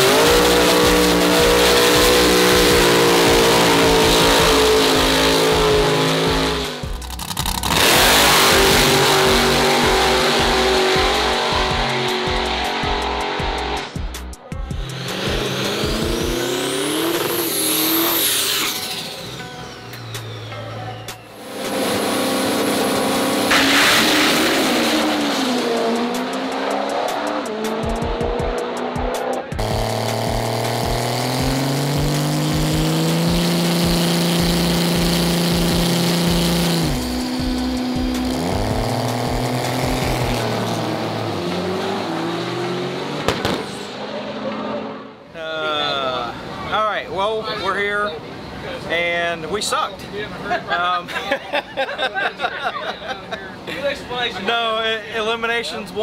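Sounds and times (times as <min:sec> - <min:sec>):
high engine whine: 0:00.0 - 0:13.9, 0:14.6 - 0:50.5
background music with steady beat: 0:00.0 - 0:17.4, 0:24.9 - 0:41.8
diesel trucks revving: 0:00.0 - 0:55.2.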